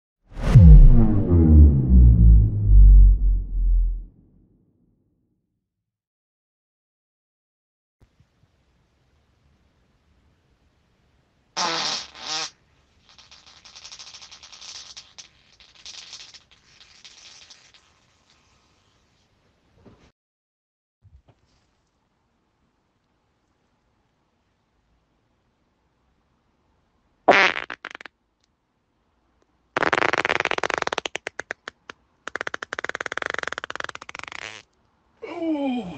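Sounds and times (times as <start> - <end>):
person farting: 11.6 - 18.0, 27.3 - 28.1, 29.8 - 34.7.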